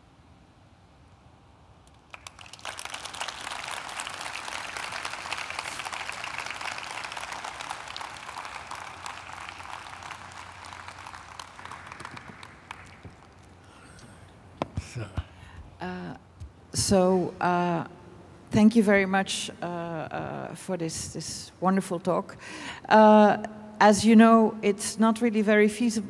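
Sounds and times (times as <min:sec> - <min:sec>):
audience applauding: 0:01.9 - 0:14.0.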